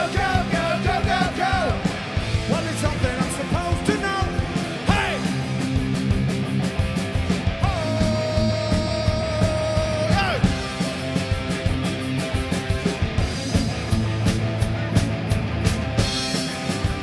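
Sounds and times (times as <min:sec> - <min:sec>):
punk rock band playing: 0:00.0 - 0:17.0
singer shouting: 0:02.5 - 0:05.4, 0:07.6 - 0:10.6.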